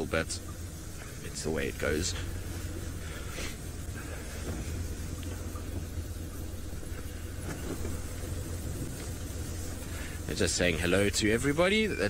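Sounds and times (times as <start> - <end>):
vehicle engine running at low revs: 0.0 - 12.0.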